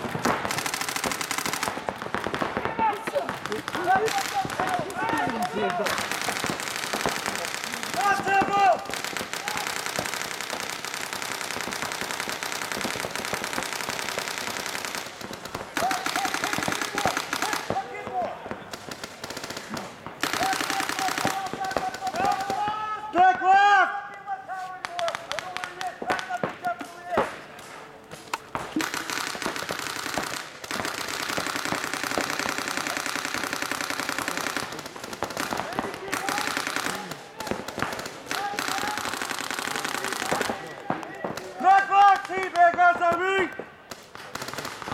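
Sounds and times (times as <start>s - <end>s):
paintball markers firing: 0.0s - 23.4s, 24.1s - 44.9s
players shouting: 2.4s - 10.5s, 13.9s - 29.5s, 31.7s - 43.6s.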